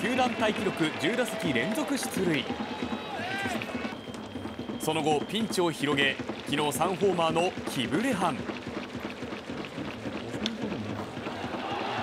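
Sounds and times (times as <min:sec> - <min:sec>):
sports commentator narrating: 0:00.0 - 0:02.6, 0:04.8 - 0:08.4.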